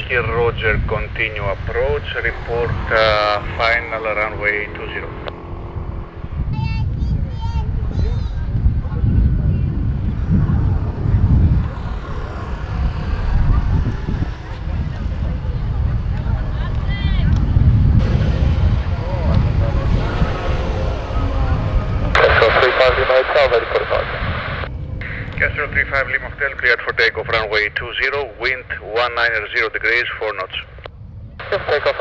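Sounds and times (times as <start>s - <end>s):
wind rumble on microphone: 0.0s - 32.0s.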